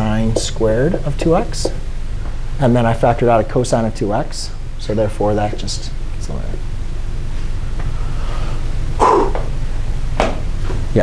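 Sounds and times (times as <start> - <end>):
low room hum: 0.0 - 11.0
loud vocal burst: 9.0 - 9.5.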